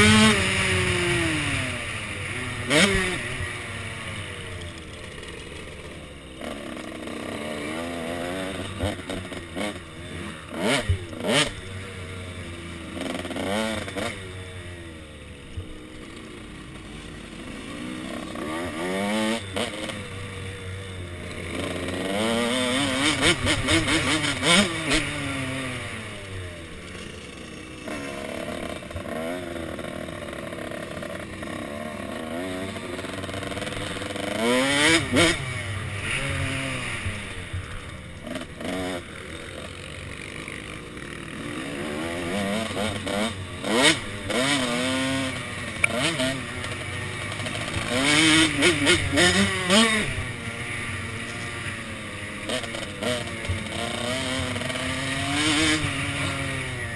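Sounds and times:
dirt bike engine revving: 0.0 - 56.9.

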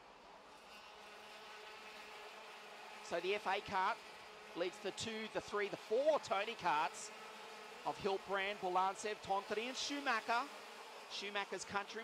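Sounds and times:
racing kart engines whining: 0.0 - 12.0.

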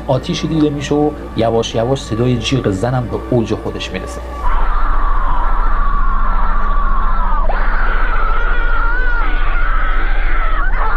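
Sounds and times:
woman screaming: 4.4 - 10.9.

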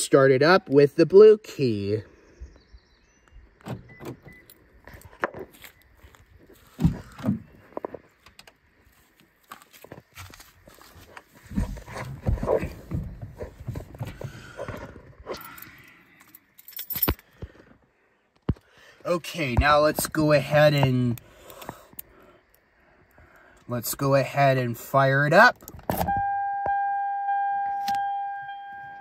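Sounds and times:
car unlocking clicks and thumps: 3.6 - 5.4, 25.6 - 29.0
car keys jangling: 15.3 - 17.3.

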